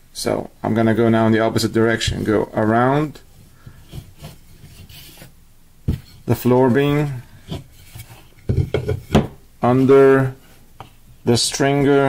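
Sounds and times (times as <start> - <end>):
rope scraping against wood: 3.6 - 5.3.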